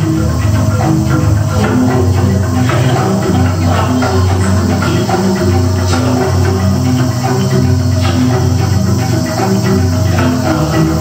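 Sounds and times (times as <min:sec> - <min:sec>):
metallophones ringing interlocking notes: 0:00.0 - 0:11.0.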